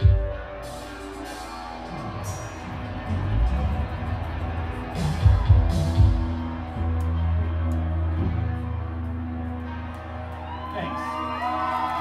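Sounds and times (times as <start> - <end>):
live band playing rock music: 0.0 - 9.8.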